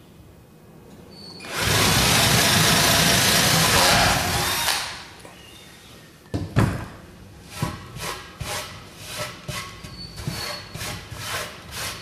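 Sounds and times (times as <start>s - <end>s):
cordless drill boring through wood: 1.4s - 4.9s.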